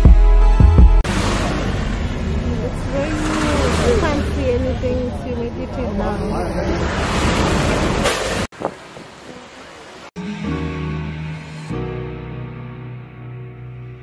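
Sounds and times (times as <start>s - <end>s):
wind noise inside car: 7.4s - 9.4s.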